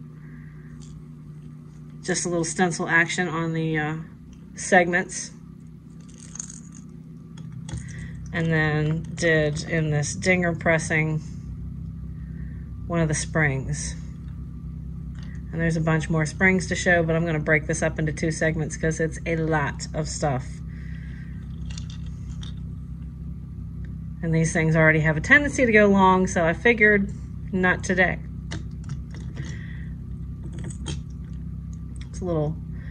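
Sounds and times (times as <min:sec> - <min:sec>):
steady low hum: 0:00.0 - 0:32.9.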